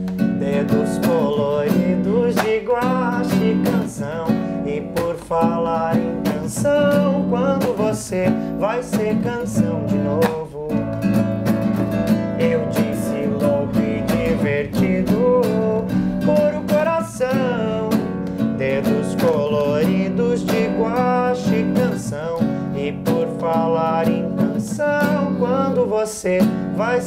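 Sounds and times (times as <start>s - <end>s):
acoustic guitar strumming: 0.0s - 27.0s
man singing: 0.0s - 27.0s.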